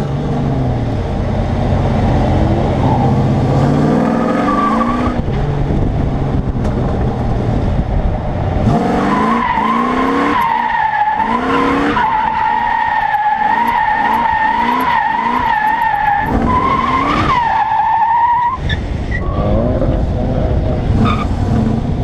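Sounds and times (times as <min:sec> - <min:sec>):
car engine revving: 0:00.0 - 0:22.0.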